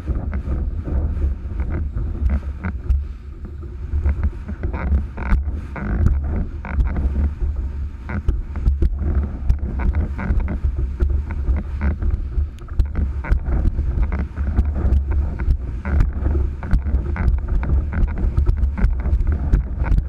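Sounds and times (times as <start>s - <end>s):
water rushing off a boat bow: 0.0s - 20.0s
wind buffeting microphone: 0.0s - 20.0s.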